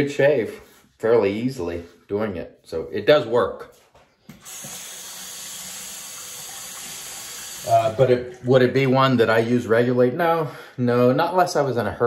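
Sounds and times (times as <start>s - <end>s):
tap turned on: 4.3s - 4.8s
water running into sink: 4.3s - 9.4s.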